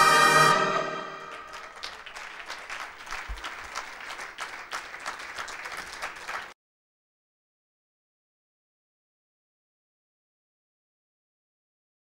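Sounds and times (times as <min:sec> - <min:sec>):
orchestral music: 0:00.0 - 0:01.9
audience applauding: 0:00.0 - 0:06.6.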